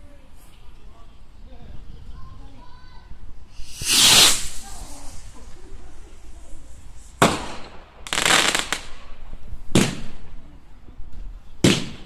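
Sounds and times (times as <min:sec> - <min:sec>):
firework rocket launching hiss: 0:03.5 - 0:09.0.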